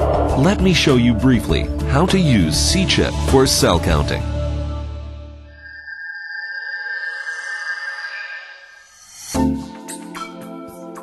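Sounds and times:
high synthesized electronic tone: 5.5s - 9.6s.

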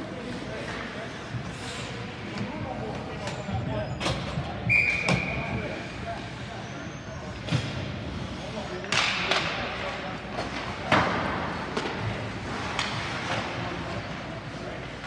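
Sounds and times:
whistle blast: 4.7s - 5.3s
hockey sticks and puck knocking: 8.9s - 13.6s.

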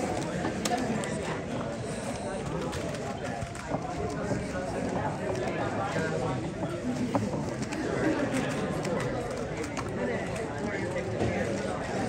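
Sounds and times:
indistinct background chatter: 0.0s - 12.0s.

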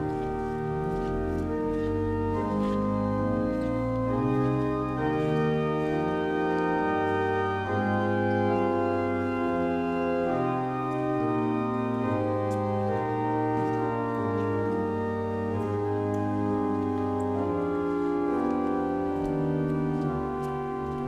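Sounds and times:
pipe organ sustained chords: 0.0s - 21.0s.

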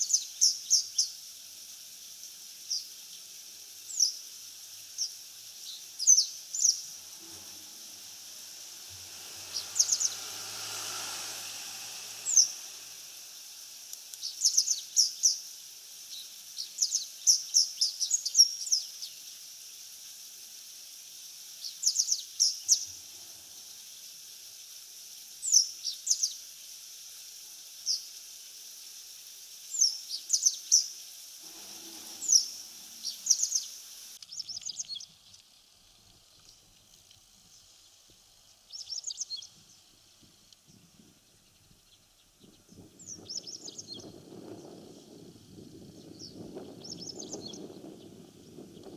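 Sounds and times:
bird chirping: 0.0s - 1.2s, 2.2s - 15.5s, 16.1s - 19.3s, 31.5s - 35.4s, 38.5s - 39.9s, 40.7s - 48.9s.

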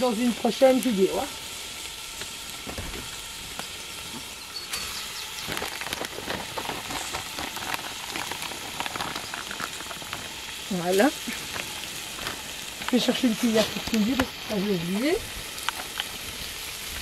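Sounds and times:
vegetables sizzling in oil: 0.0s - 17.0s.

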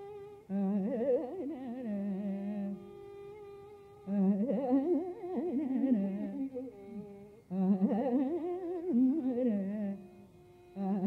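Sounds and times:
woman singing ornamented melody: 0.0s - 3.4s, 4.0s - 11.0s
tanpura drone: 0.0s - 11.0s.

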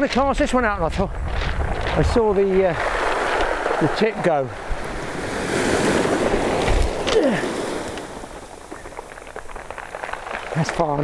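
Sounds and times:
wind on microphone: 0.0s - 11.0s
surf breaking on shingle beach: 1.5s - 11.0s
small clicks and crunches: 7.9s - 11.0s.

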